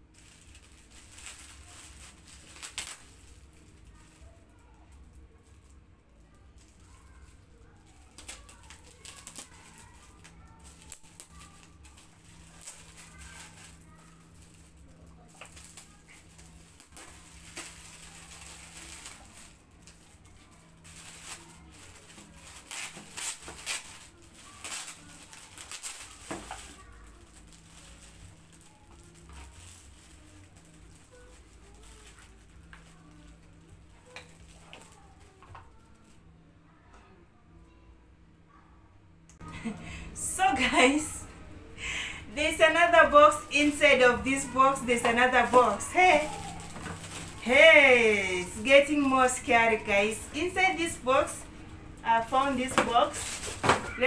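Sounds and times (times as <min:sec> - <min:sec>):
gift wrap crinkling and tearing: 0:00.0 - 0:36.2, 0:41.8 - 0:54.0
faint steady hum: 0:00.0 - 0:54.0.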